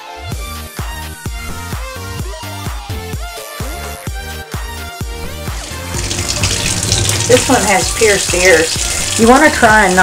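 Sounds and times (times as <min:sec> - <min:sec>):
kitchen faucet running: 0:05.4 - 0:10.0
water splashing into steel sink: 0:05.4 - 0:10.0.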